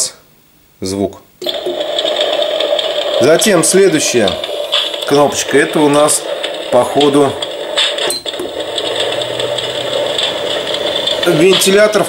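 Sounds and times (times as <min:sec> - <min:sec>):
heater fan whirring: 0:00.0 - 0:12.0.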